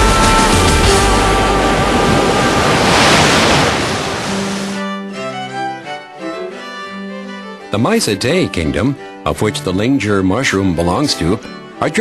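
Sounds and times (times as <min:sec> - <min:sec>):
rushing sea water: 0:00.0 - 0:04.9.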